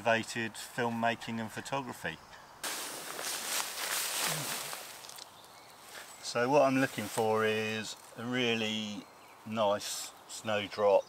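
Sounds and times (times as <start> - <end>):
dry leaves rustling and crackling: 2.6 - 8.2.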